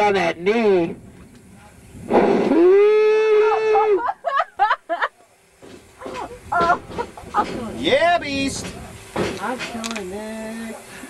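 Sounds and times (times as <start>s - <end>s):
person laughing: 2.7s - 5.2s, 6.0s - 7.6s.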